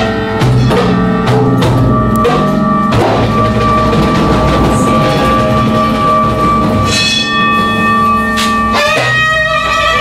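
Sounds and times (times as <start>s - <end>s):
hand drum strokes: 0.0s - 10.0s
long held notes: 0.0s - 10.0s.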